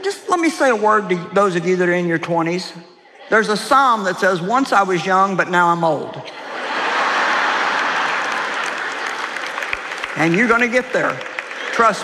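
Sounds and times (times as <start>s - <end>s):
audience applauding: 6.6s - 12.0s.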